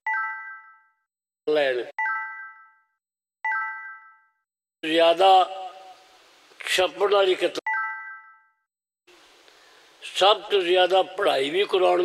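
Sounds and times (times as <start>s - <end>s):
faint room noise: 9.1s - 11.9s.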